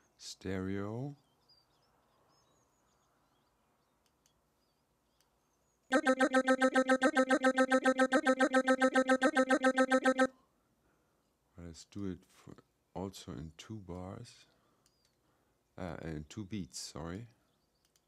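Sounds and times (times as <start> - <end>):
synthesized voice stuttering syllables: 5.9 - 10.3.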